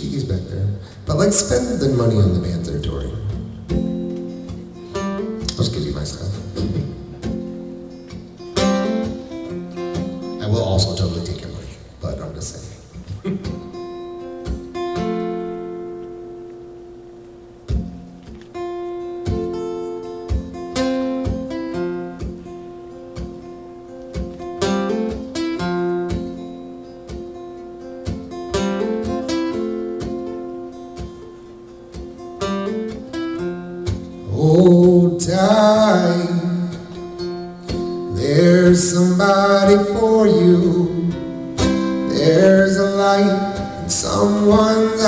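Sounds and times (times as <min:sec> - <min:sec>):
acoustic guitar chords: 0:00.0 - 0:45.0
man singing: 0:34.2 - 0:37.0, 0:38.0 - 0:45.0.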